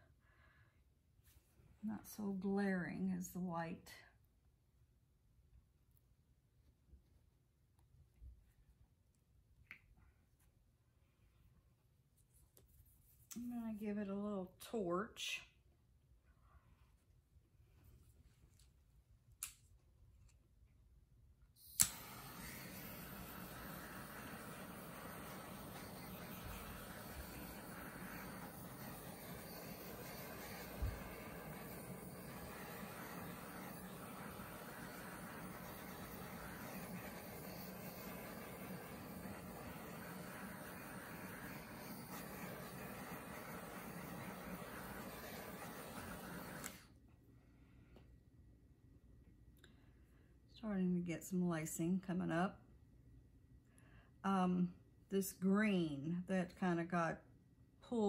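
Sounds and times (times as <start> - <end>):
gas torch igniter click: 21.6 - 41.5, 42.1 - 46.8
gas torch flame hissing: 21.6 - 47.0.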